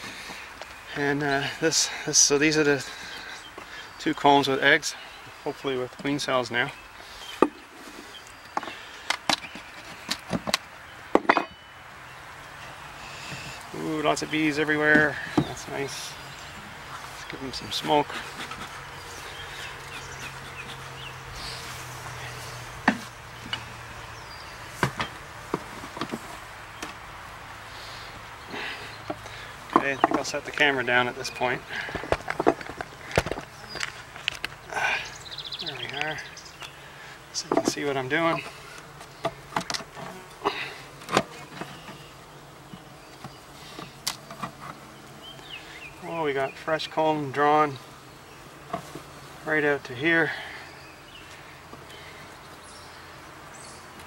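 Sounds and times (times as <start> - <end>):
honeybees buzzing: 0.0 - 54.0.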